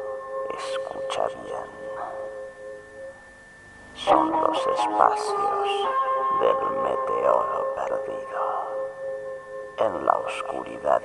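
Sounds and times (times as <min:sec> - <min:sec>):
high sustained tone: 0:00.0 - 0:11.0
lower sustained tones: 0:00.0 - 0:11.0.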